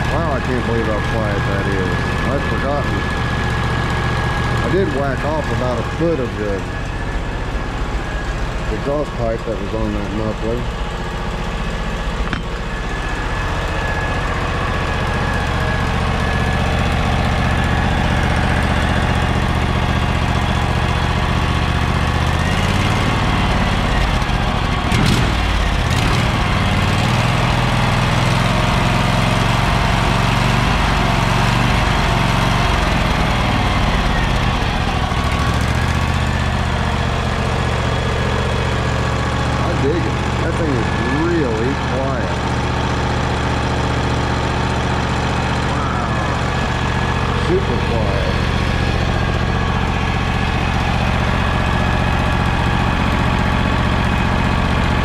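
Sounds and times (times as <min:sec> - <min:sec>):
engine running: 0:00.0 - 0:55.0.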